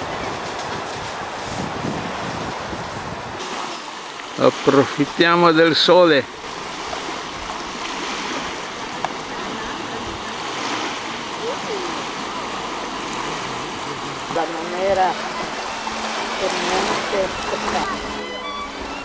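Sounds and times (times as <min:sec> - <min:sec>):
waves washing onto beach: 0:00.0 - 0:19.0
voices: 0:08.3 - 0:19.0.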